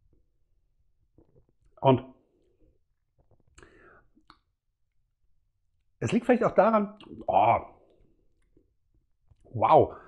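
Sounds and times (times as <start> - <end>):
faint breath: 3.6 - 4.2.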